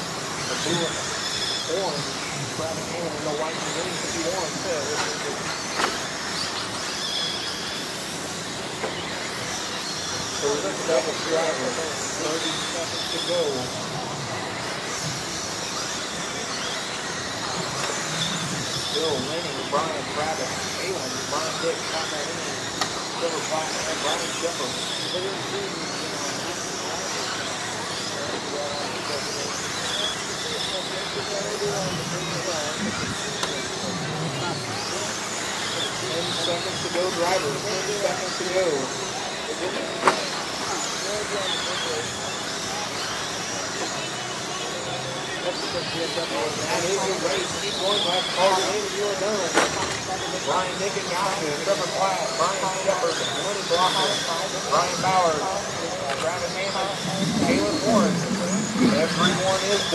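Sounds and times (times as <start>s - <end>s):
rc car motors whining: 0.0s - 59.9s.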